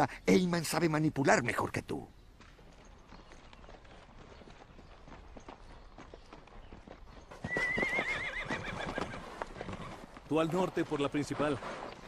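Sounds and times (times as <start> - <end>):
horse hooves clip-clopping: 2.3 - 12.0
horse whinnying: 7.4 - 10.1.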